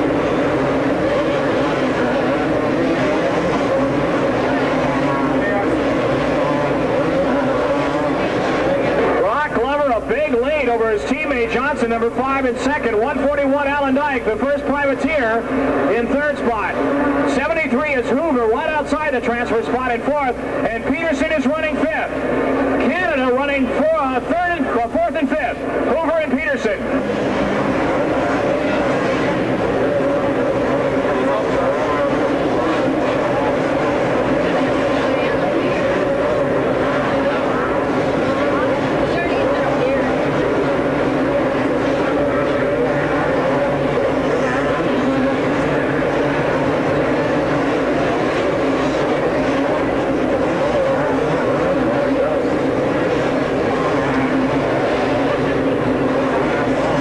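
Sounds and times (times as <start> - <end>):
motocross bikes racing: 0.0 - 57.0.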